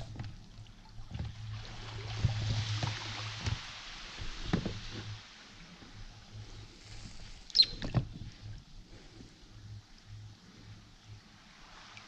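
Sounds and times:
oar squeaking on rubber dinghy: 0:07.5 - 0:08.2.

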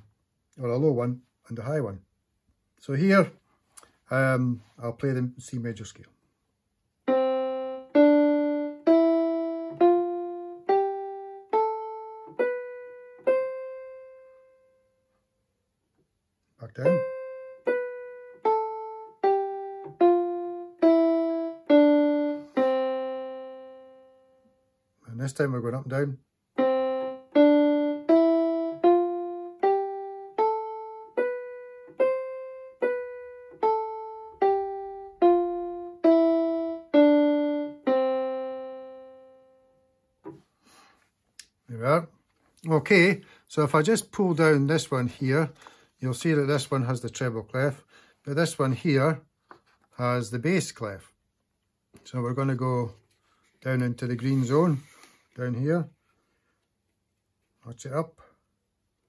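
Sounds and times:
electronic keyboard piano scale: 0:07.0 - 0:15.0, 0:16.6 - 0:40.4.

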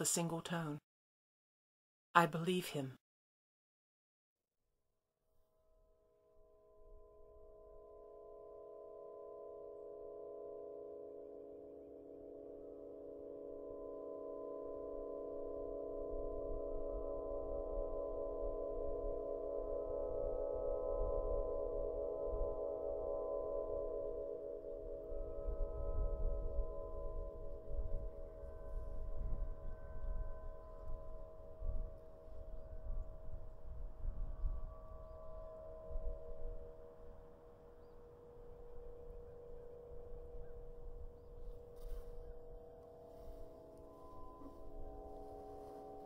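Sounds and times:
wind harp pulsing tones: 0:06.7 - 0:46.0
wind rumbling on microphone: 0:24.8 - 0:46.0.

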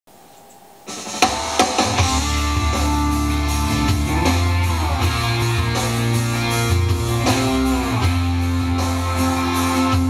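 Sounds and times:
band playing: 0:00.9 - 0:10.0
drum fill with cymbal: 0:00.9 - 0:10.0.

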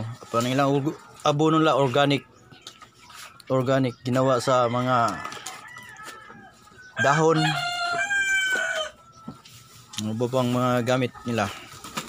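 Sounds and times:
rooster crowing: 0:04.6 - 0:09.1.

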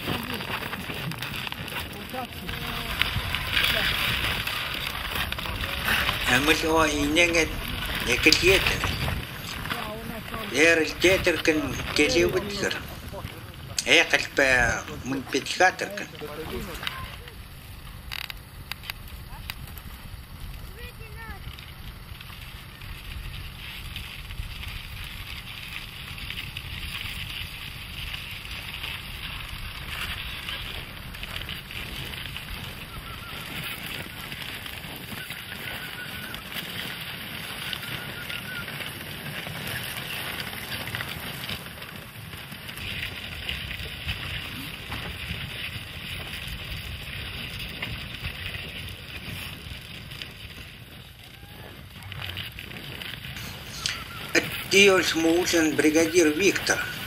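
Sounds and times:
hooves on snow: 0:00.0 - 0:57.0
low wind rumble: 0:00.0 - 0:57.0
sledge runners hissing on snow: 0:23.0 - 0:50.9.

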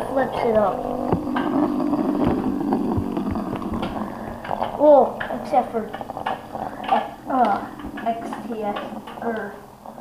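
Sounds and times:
spinning top whirring: 0:00.0 - 0:09.3
top ticking and knocking on wood: 0:01.1 - 0:09.4.

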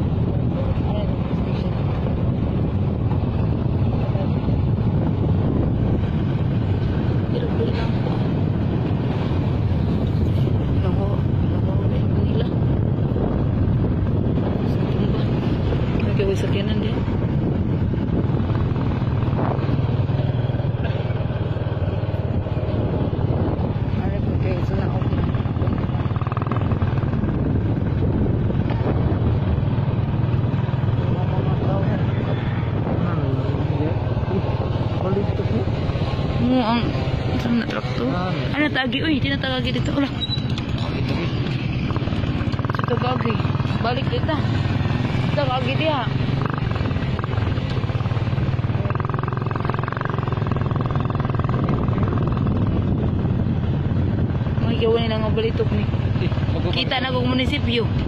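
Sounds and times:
wind rushing over microphone: 0:00.0 - 0:58.0
small motorcycle engine running: 0:17.8 - 0:58.0.

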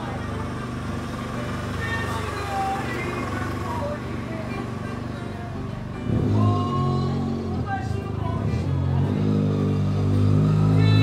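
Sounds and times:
people's voices: 0:00.0 - 0:09.4
motor traffic running: 0:00.0 - 0:11.0.

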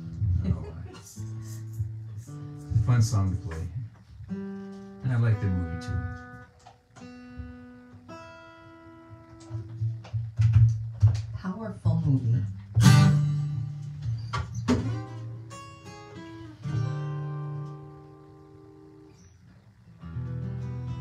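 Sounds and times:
acoustic guitar picking: 0:00.0 - 0:21.0.

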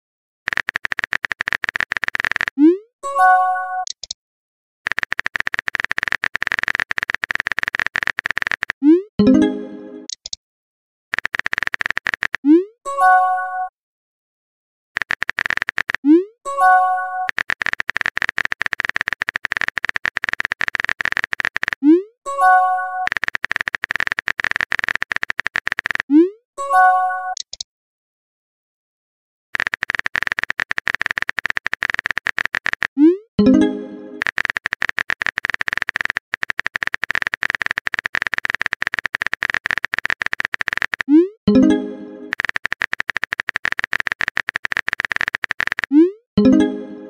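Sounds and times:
rapid keyboard clicks: 0:00.5 - 0:02.6, 0:04.9 - 0:08.9, 0:11.1 - 0:12.6, 0:15.0 - 0:16.3, 0:17.2 - 0:21.9, 0:23.0 - 0:26.1, 0:29.6 - 0:33.2, 0:34.2 - 0:41.3, 0:42.3 - 0:46.1.

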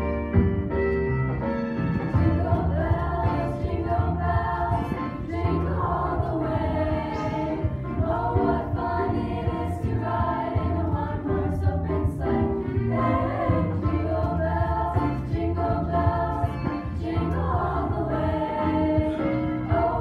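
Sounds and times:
girls' choir singing in harmony: 0:02.1 - 0:20.0.

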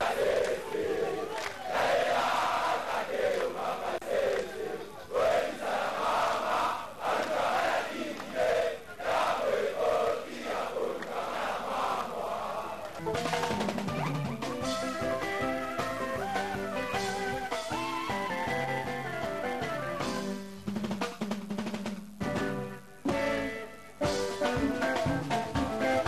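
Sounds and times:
crowd of young men chanting: 0:00.0 - 0:12.9.

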